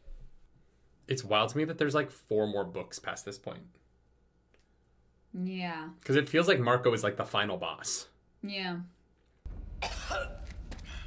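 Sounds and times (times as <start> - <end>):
low steady rumble: 9.5 - 11.0
person coughing: 9.8 - 11.0.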